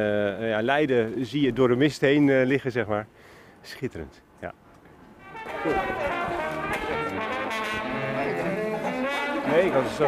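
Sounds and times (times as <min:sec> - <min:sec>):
brass instruments playing: 0:05.2 - 0:10.0.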